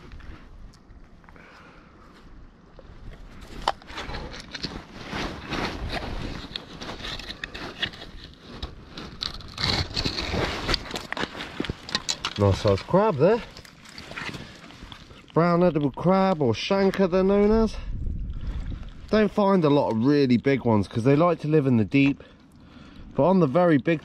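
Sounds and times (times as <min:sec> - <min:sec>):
hands rustling among wet rocks: 0:03.0 - 0:17.8.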